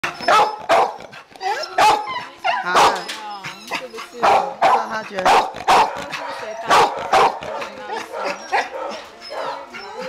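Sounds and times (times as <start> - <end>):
dogs whining: 0.0 - 5.2, 6.0 - 6.9, 7.7 - 10.0
dogs barking: 0.0 - 10.0.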